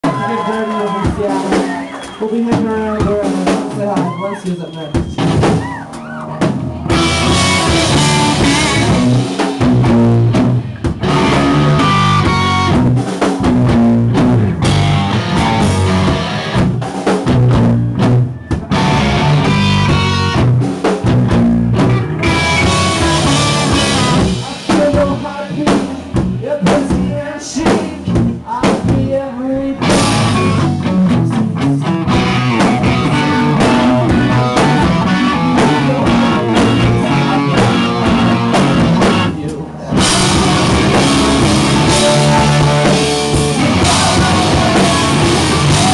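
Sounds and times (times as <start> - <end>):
drum kit: 0.0 - 45.9
electric guitar: 5.2 - 27.1, 29.7 - 45.9.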